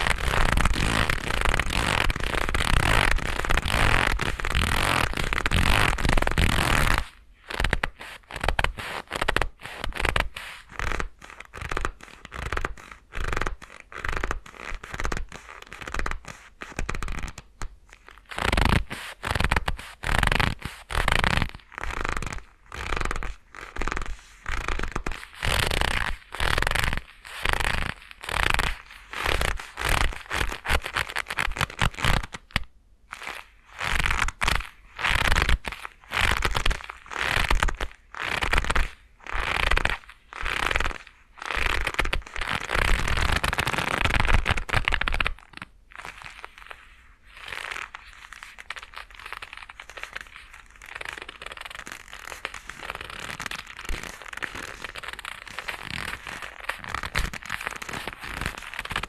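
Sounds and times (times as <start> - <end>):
leather gloves rubbing: 0.0 - 32.3, 33.2 - 59.0.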